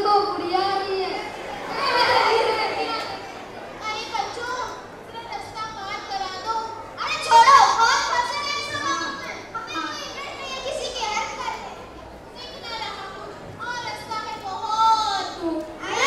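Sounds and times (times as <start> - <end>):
children speaking and calling out: 0.0 - 16.0.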